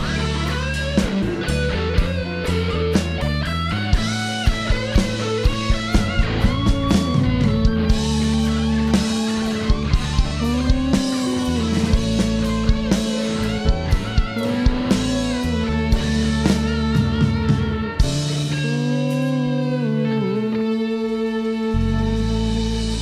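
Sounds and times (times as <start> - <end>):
band playing: 0.0 - 23.0
electric guitar lead notes: 0.0 - 23.0.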